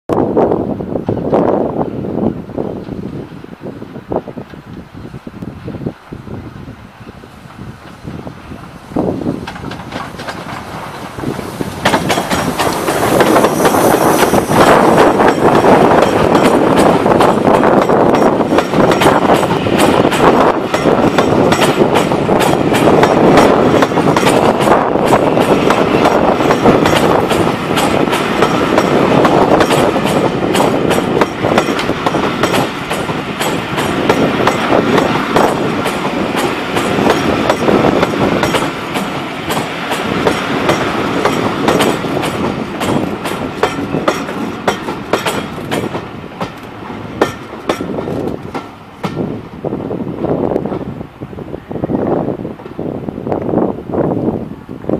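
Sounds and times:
train wheels clacking over rail joints: 0:08.6 - 0:49.3.

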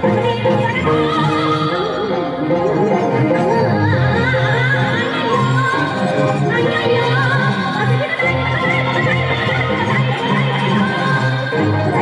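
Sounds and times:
instrumental backing track: 0:00.0 - 0:12.0
woman singing warbling vocal: 0:00.0 - 0:12.0.

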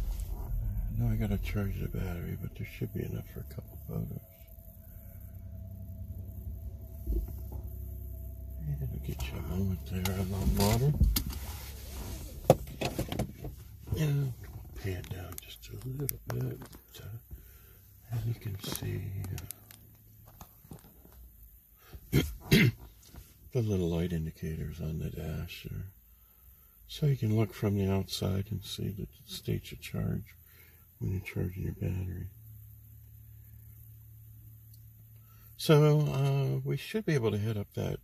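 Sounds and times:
steady low hum: 0:00.0 - 0:38.0
man speaking quietly: 0:00.8 - 0:04.4, 0:08.6 - 0:11.1, 0:13.9 - 0:17.2, 0:18.1 - 0:19.5, 0:31.0 - 0:32.3.

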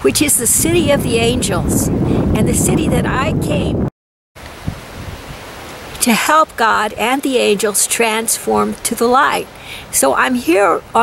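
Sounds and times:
outdoor background hiss: 0:04.4 - 0:11.0.

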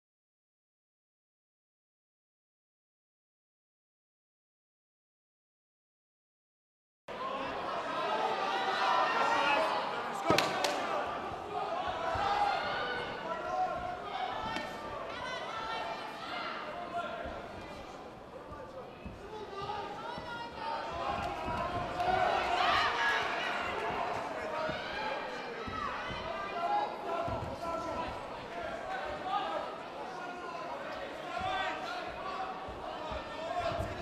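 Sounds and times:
people shouting: 0:07.4 - 0:17.2, 0:19.3 - 0:28.2.

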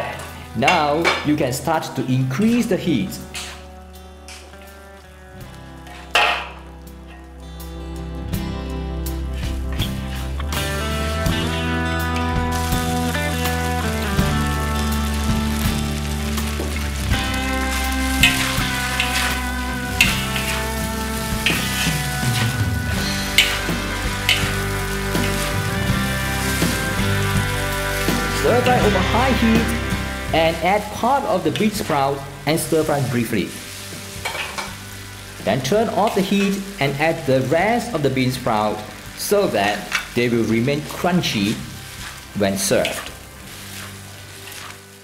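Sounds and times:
background music: 0:00.0 - 0:45.0
metal spatula scraping wok: 0:03.3 - 0:03.7, 0:05.8 - 0:06.6, 0:17.0 - 0:32.0, 0:33.0 - 0:36.8, 0:41.2 - 0:45.0
noodles sizzling in a wok: 0:03.3 - 0:07.4, 0:09.1 - 0:45.0.

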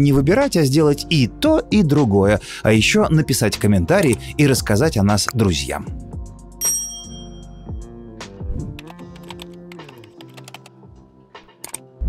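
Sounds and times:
soft background music: 0:00.0 - 0:12.0
keyboard typing clicks: 0:08.8 - 0:10.7, 0:11.6 - 0:11.9.

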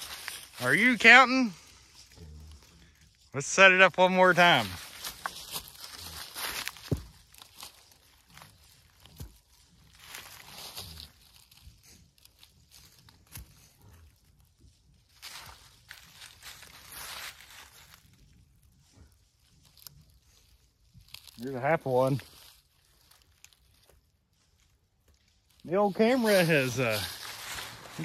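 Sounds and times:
dry leaves rustling and crunching: 0:00.0 - 0:28.0.

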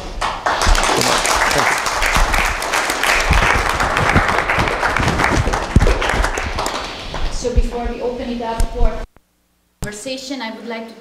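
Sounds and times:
audience applauding: 0:00.2 - 0:07.5.

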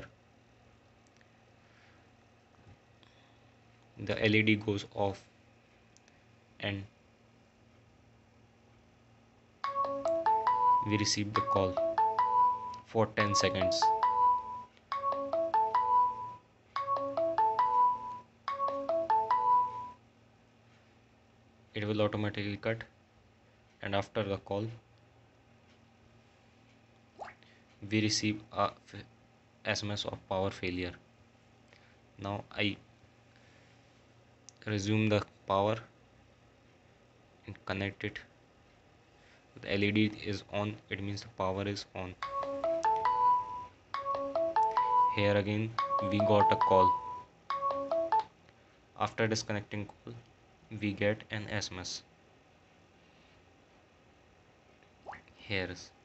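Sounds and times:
marimba-like phone ringtone: 0:09.6 - 0:20.0, 0:42.2 - 0:48.3.

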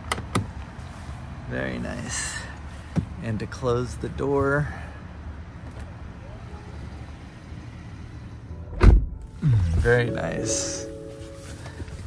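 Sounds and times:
outside noise: 0:00.0 - 0:12.0
car door thudding shut: 0:08.7 - 0:09.3.

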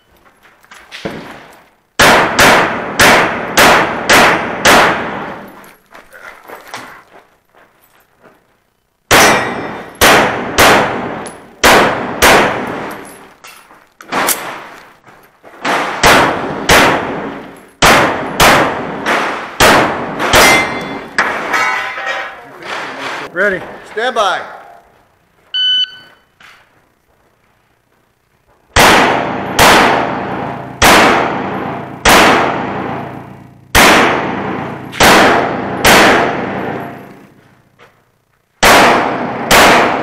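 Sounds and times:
handgun firing rapid shots: 0:02.0 - 0:05.2, 0:09.1 - 0:12.8, 0:15.6 - 0:17.2, 0:17.8 - 0:20.9, 0:28.8 - 0:33.1, 0:33.7 - 0:36.8, 0:38.6 - 0:40.0.

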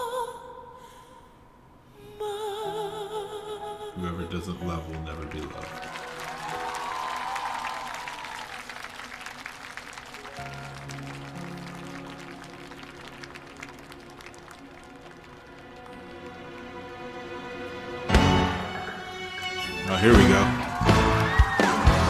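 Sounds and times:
audience applause: 0:04.9 - 0:17.5, 0:18.1 - 0:22.0.

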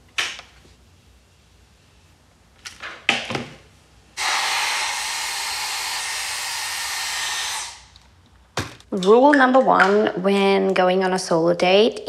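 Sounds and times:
hair dryer blowing: 0:04.2 - 0:07.9.

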